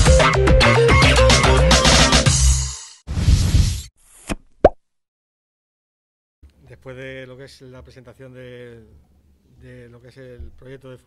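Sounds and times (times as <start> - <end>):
rising pop blip: 4.3 - 4.8.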